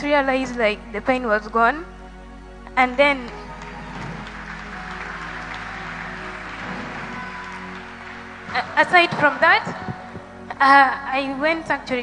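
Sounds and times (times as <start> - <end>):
soft background music: 0.0 - 12.0
congregation applauding: 3.2 - 10.5.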